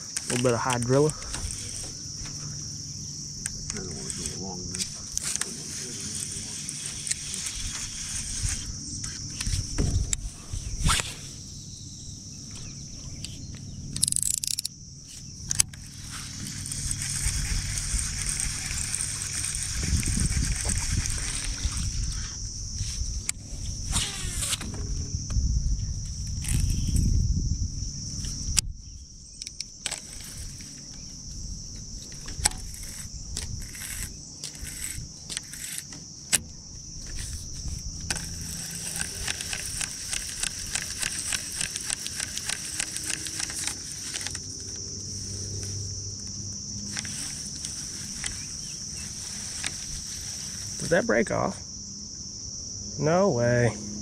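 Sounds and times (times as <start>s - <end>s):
insects buzzing: 0.0s - 54.0s
fishing reel clicks: 0.1s - 1.9s, 3.4s - 9.6s, 14.0s - 14.7s, 15.5s - 22.2s, 26.3s - 27.0s, 29.4s - 31.0s, 32.3s - 36.4s, 38.1s - 45.7s, 46.9s - 50.9s
low rumble: 24.6s - 29.3s.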